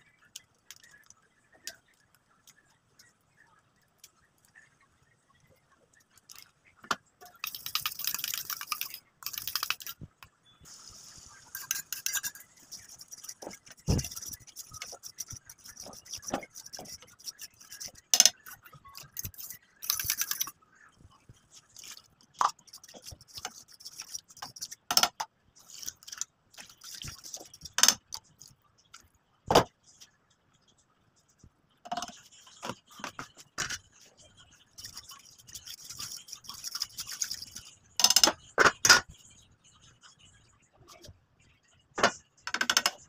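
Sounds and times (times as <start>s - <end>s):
frying sizzle: 10.7s - 11.8s
fork scraping a metal pan: 11.4s - 20.5s.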